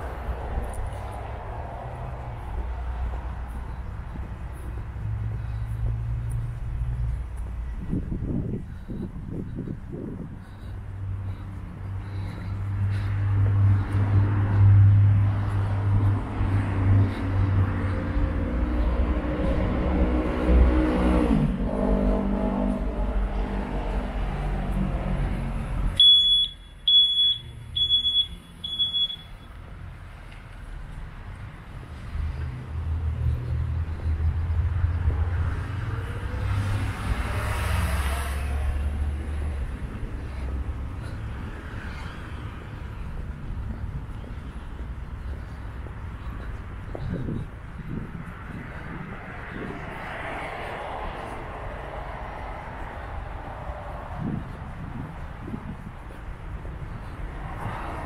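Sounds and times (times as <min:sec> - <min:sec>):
vehicle engine passing: 0:00.0 - 0:26.0, 0:30.0 - 0:58.0
vehicle rumbling past: 0:00.0 - 0:26.0, 0:27.3 - 0:58.0
road traffic: 0:00.0 - 0:58.0
short high electronic beeps: 0:26.0 - 0:29.4.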